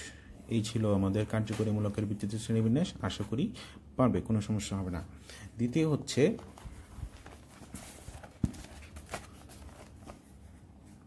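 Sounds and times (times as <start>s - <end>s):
notebook pages turning: 6.2s - 10.5s.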